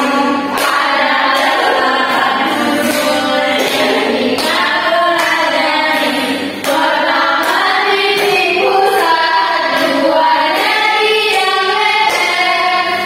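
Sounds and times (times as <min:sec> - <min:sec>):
choir singing: 0:00.0 - 0:13.0.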